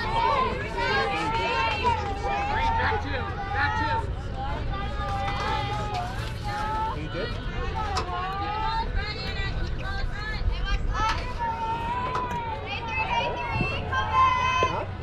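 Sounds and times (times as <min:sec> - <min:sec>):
players chanting and cheering: 0:00.0 - 0:15.0.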